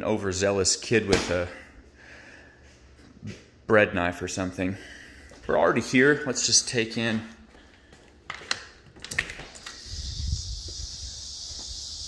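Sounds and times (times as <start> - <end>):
door handle and latch clicks: 8.3 - 9.8
high insect chorus: 9.5 - 12.0.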